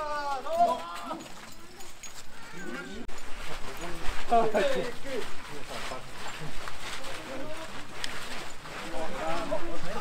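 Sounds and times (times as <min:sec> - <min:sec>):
people shouting calls: 0:00.0 - 0:03.1.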